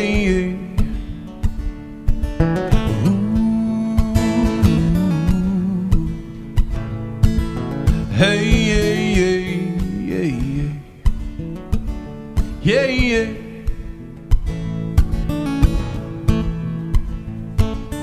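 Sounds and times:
acoustic guitar strummed: 0:00.0 - 0:18.0.

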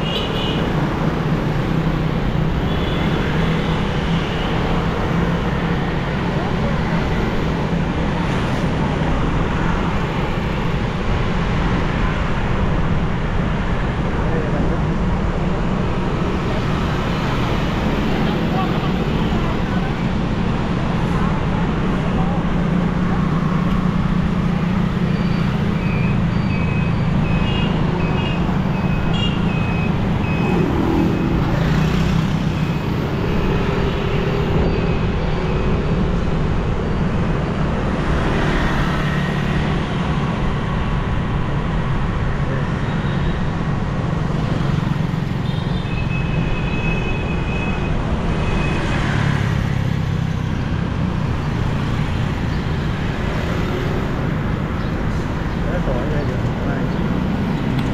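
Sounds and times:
motorbike engine and road noise: 0:00.0 - 0:57.9.

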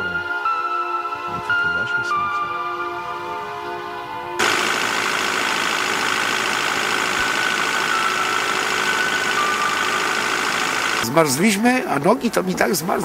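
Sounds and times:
music: 0:00.0 - 0:04.4.

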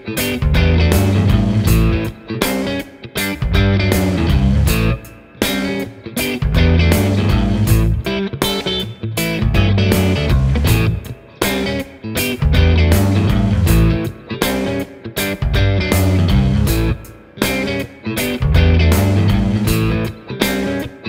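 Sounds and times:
electric guitar chord riff: 0:00.0 - 0:21.0.

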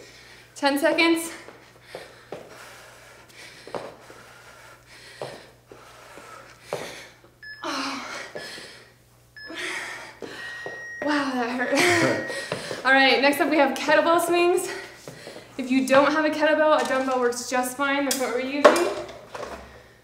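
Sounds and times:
heavy breathing: 0:01.2 - 0:12.9, 0:14.6 - 0:15.6
feet thudding on floor: 0:11.9 - 0:12.9.

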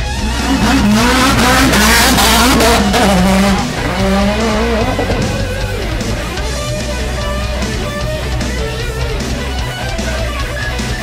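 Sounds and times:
race car engine revving: 0:00.0 - 0:11.0
tyres squealing: 0:00.0 - 0:11.0.

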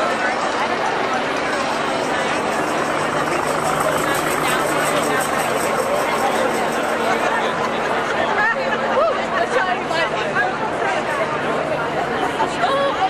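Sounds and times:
crowd babble: 0:00.0 - 0:13.0.

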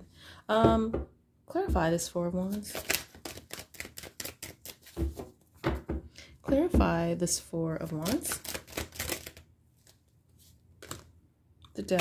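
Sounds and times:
card clicks and rustles: 0:02.7 - 0:05.0, 0:08.4 - 0:10.1, 0:10.8 - 0:11.1.

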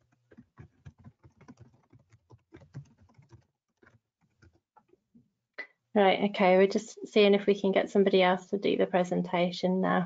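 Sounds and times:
faint keyboard typing: 0:00.0 - 0:05.0.

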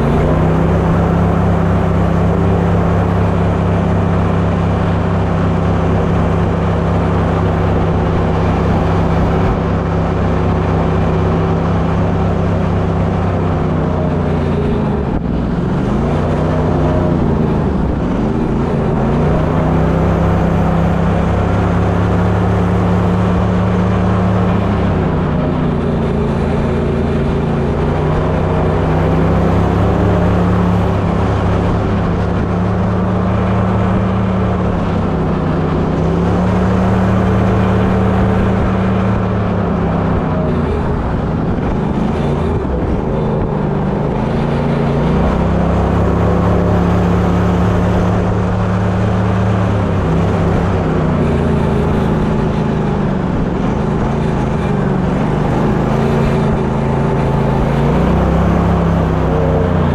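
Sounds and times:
boat motor running: 0:00.0 - 0:59.9.

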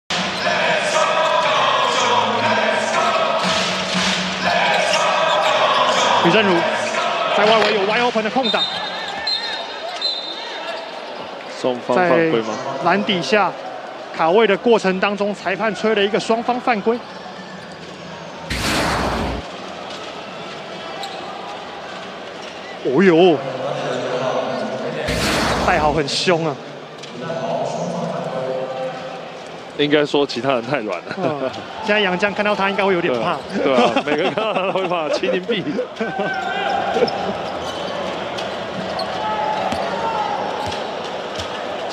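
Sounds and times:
arena crowd voices: 0:00.1 - 0:41.9
loud burst of noise: 0:18.4 - 0:19.6, 0:25.1 - 0:26.2.

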